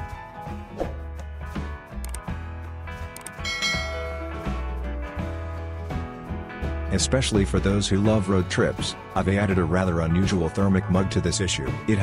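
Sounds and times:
bright notification bell ding: 3.4s - 4.6s.

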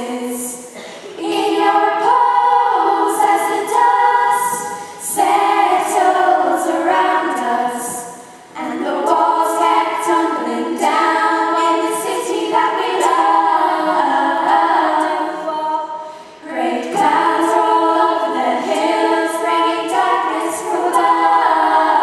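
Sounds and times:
girls choir singing: 0.0s - 22.0s.

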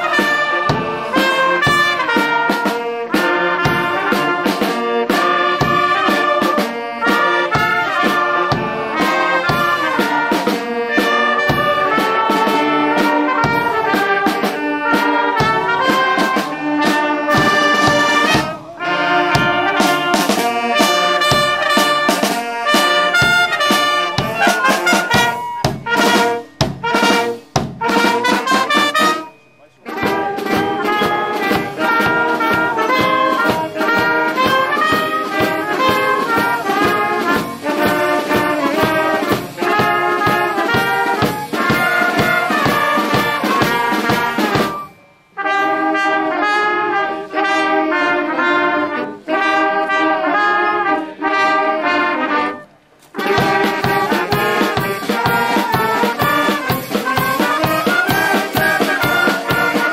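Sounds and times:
brass band playing: 0.0s - 59.9s.

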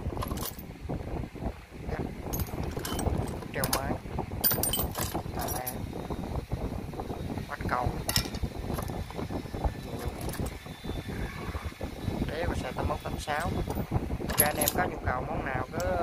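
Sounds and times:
metal bolts rattling in plastic tub: 0.2s - 0.6s, 2.3s - 5.8s, 8.1s - 8.9s, 13.4s - 14.9s.

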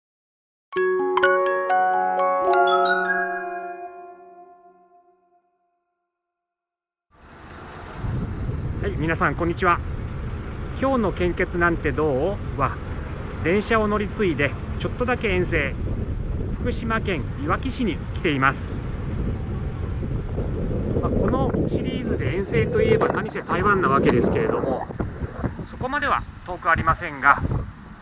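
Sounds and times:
wind: 7.1s - 28.0s
traffic rumble: 7.2s - 28.0s.

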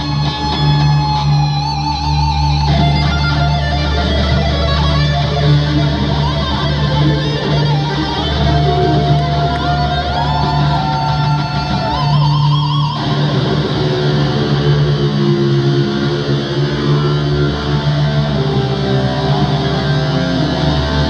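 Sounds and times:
electric guitar solo: 0.0s - 21.0s
low drone: 5.8s - 21.0s.

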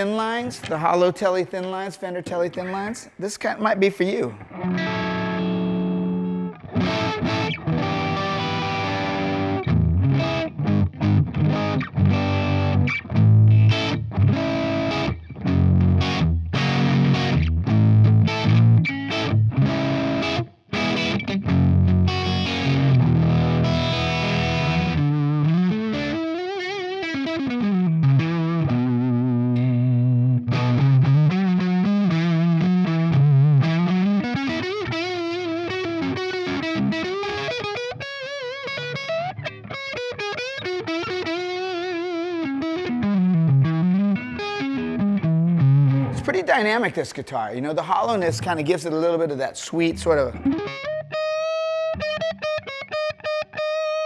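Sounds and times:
distorted electric guitar: 4.4s - 47.2s, 49.7s - 54.0s.

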